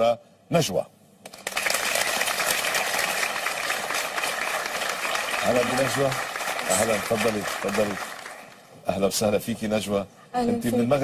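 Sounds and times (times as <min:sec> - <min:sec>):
audience applauding: 0:01.3 - 0:08.7.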